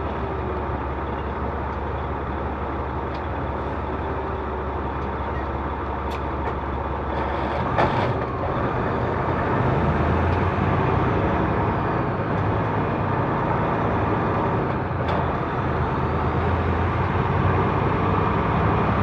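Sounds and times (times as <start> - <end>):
truck diesel engine running: 0.0 - 19.0.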